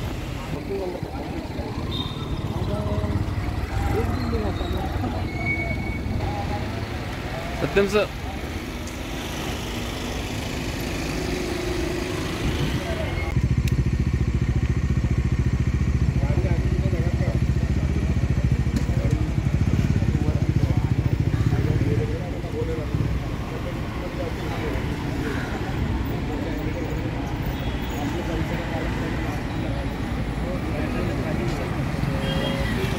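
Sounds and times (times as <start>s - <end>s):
faint voices: 0.0s - 8.9s
street noise: 0.0s - 32.9s
engine idling: 13.3s - 22.8s.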